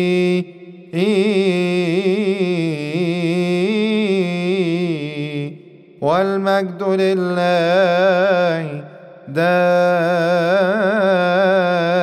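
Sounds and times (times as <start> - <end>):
man chanting unaccompanied: 0.0 - 12.0.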